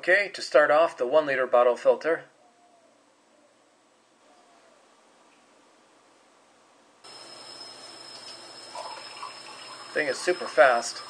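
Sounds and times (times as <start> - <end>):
water running into a glass: 7.4 - 11.0.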